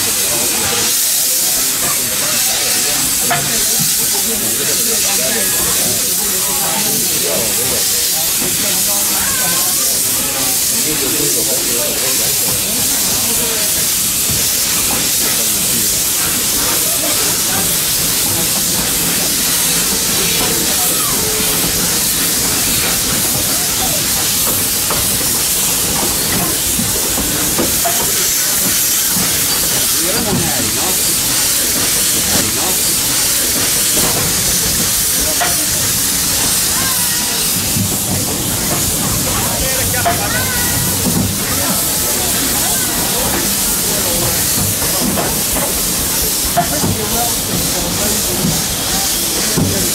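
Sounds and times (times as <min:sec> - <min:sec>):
steam locomotive hissing steam: 0:00.0 - 0:49.9.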